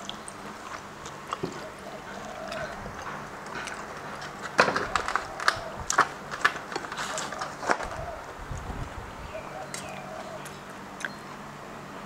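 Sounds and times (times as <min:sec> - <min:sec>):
person chewing: 0:00.0 - 0:04.6, 0:09.7 - 0:11.2.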